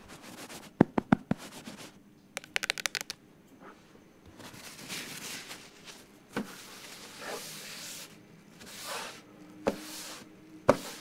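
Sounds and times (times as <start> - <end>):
sharp hand clicks: 2.4 - 3.2.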